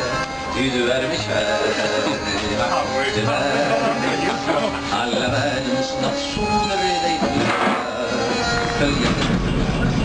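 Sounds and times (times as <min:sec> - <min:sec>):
song over loudspeaker: 0:00.0 - 0:10.0
trolley car rumbling: 0:04.0 - 0:10.0.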